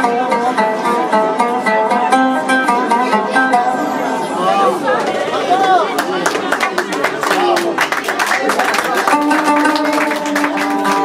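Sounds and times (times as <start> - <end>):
low chatter: 0.0 - 11.0.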